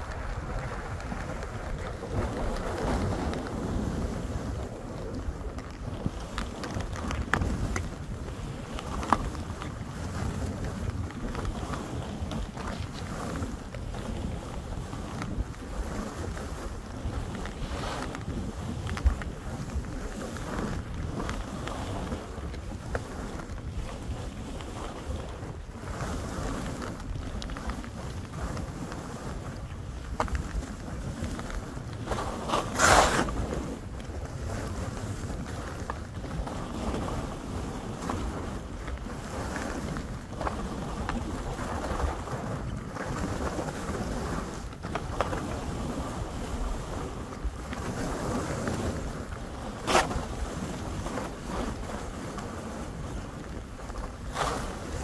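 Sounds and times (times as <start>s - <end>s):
skis scraping through snow: 0.0s - 55.0s
wind buffeting microphone: 0.0s - 55.0s.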